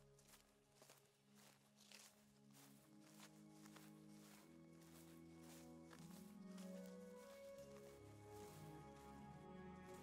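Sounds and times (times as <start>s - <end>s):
footsteps on dirt trail: 0.0s - 10.0s
soft music chords: 0.0s - 10.0s.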